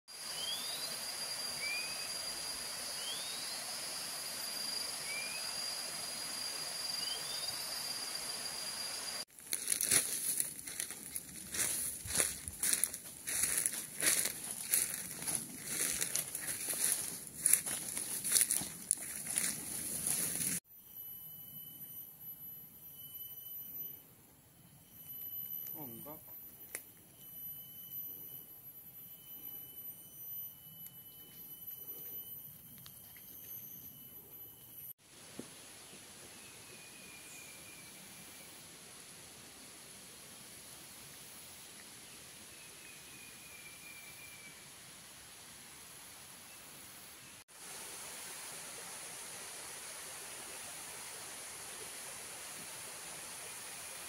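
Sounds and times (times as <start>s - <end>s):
high insect drone: 0.1s - 24.0s
footsteps through leaf litter: 9.3s - 20.6s.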